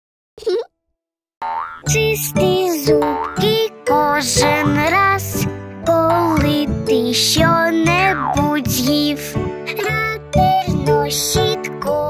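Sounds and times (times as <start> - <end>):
children's song music: 1.5 - 12.0
person singing: 1.9 - 12.0.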